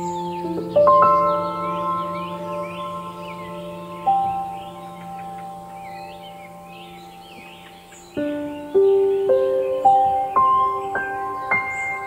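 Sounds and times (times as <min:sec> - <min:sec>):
bell-like relaxation music: 0:00.0 - 0:12.0
birds chirping: 0:00.0 - 0:12.0.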